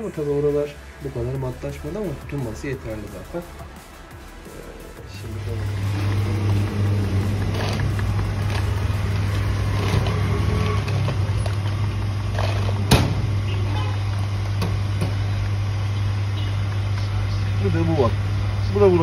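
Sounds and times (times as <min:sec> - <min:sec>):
motor humming: 0:03.8 - 0:19.0.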